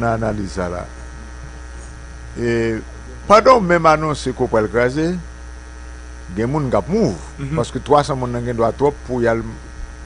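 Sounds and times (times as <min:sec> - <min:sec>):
man speaking: 0:00.0 - 0:01.4, 0:02.3 - 0:05.4, 0:06.3 - 0:09.7
electrical mains hum: 0:00.0 - 0:10.0.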